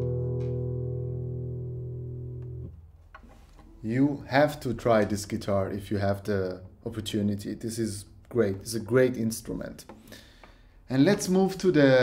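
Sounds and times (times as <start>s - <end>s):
guitar chord ringing: 0.0s - 2.8s.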